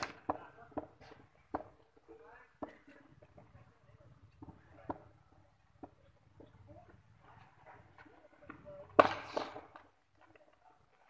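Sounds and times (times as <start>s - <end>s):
cricket bat striking ball: 8.9s - 9.9s.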